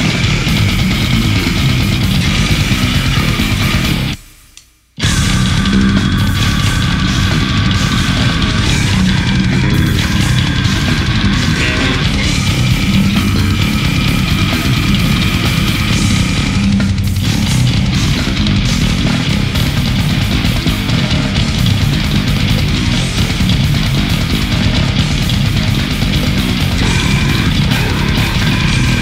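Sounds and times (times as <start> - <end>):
bass guitar played fingerstyle: 0.0 - 4.2, 5.0 - 29.0
death metal band: 0.0 - 29.0.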